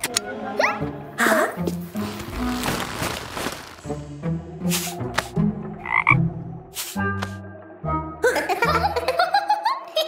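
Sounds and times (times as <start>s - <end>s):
low croaking calls: 5.8s - 6.3s.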